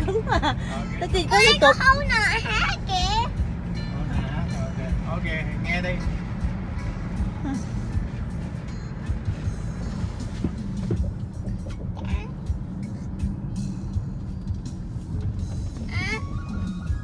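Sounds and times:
car driving rumble from inside: 0.0 - 17.0.

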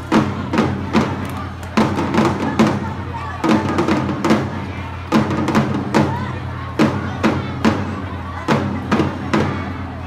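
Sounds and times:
crowd chatter: 0.0 - 10.0
snare drums marching rhythm: 0.0 - 10.0.

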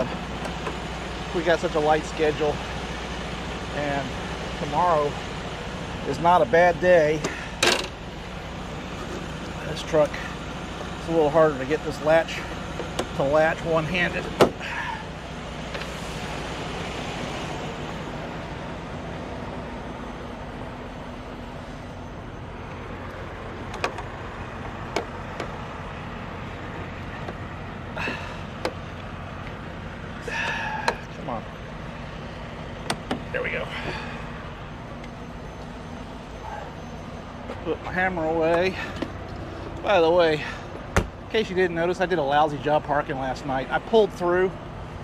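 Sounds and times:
low engine hum: 0.0 - 45.0.

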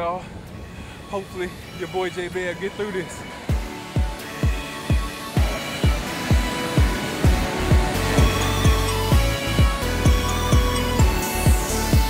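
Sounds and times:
electronic music with kick drum: 3.5 - 12.0.

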